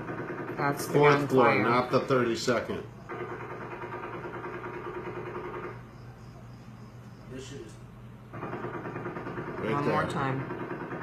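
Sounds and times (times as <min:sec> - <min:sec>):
distant rapid gunfire: 0:00.0 - 0:01.4, 0:03.1 - 0:05.8, 0:08.3 - 0:11.0
steady low hum: 0:00.0 - 0:11.0.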